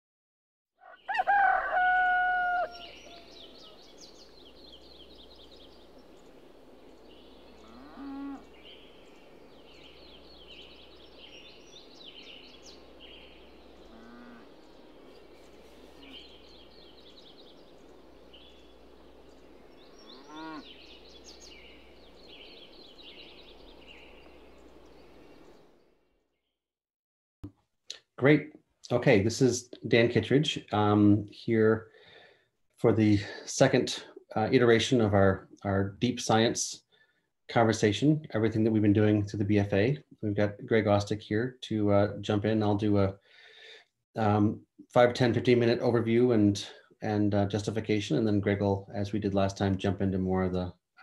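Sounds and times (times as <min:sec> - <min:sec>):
rooster crowing: 0:00.8 - 0:03.8
faint fowl calls: 0:00.8 - 0:04.8, 0:07.4 - 0:10.7, 0:12.3 - 0:25.5
small birds chirping: 0:00.8 - 0:26.6.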